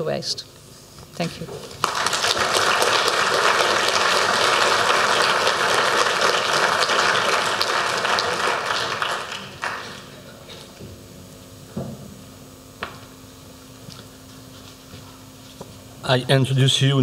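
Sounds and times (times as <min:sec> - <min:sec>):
audience applauding: 0:01.6 - 0:10.4.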